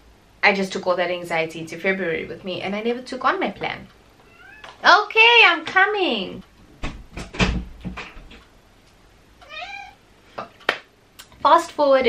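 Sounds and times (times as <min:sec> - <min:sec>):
cat meowing: 0:04.2 - 0:04.8, 0:09.4 - 0:10.0.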